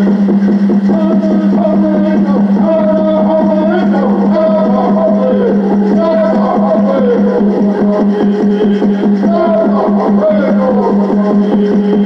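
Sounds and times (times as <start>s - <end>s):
water drum beating fast: 0.0s - 12.0s
men singing: 0.9s - 12.0s.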